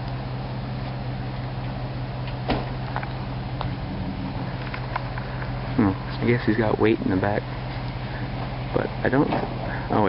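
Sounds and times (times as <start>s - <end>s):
truck engine droning: 0.0s - 10.0s.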